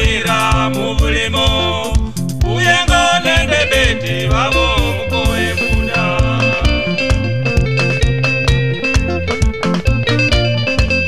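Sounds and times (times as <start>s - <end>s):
bass guitar: 0.0s - 11.0s
electric guitar lines: 0.0s - 11.0s
steady drum beat: 0.0s - 11.0s.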